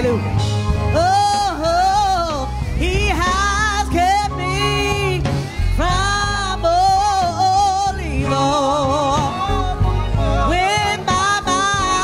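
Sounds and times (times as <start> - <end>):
band accompaniment with low bass: 0.0 - 12.0
person singing gospel: 0.0 - 12.0.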